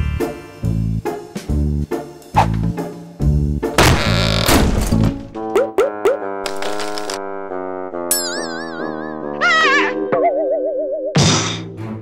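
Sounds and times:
cartoon background music: 0.0s - 12.0s.

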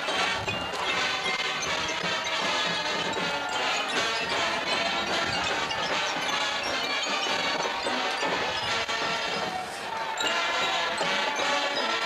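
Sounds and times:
brass band playing: 0.0s - 12.0s
drumline: 0.0s - 12.0s.

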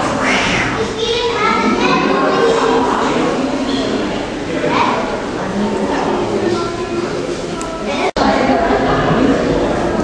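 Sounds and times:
children chattering and calling out: 0.0s - 10.0s
indistinct talk: 0.0s - 10.0s.

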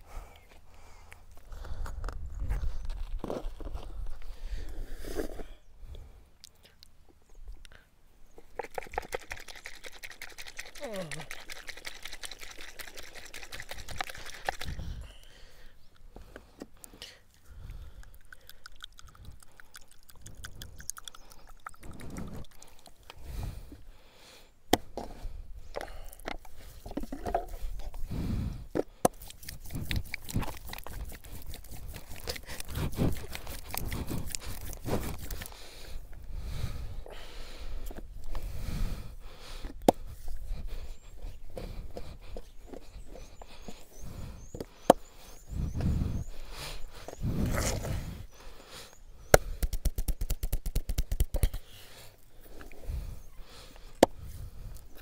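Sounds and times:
hands sliding on oiled skin: 29.2s - 35.6s.

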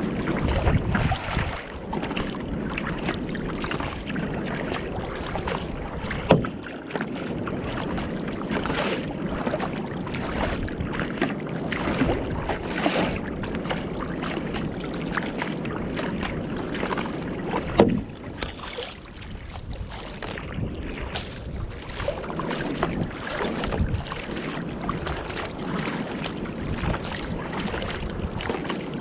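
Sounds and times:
water splashing against boat: 0.0s - 29.0s
wind on microphone: 0.0s - 29.0s.

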